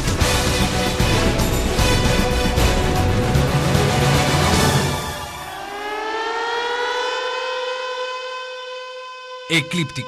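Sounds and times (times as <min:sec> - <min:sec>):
rising electronic siren tone: 0:05.0 - 0:10.0.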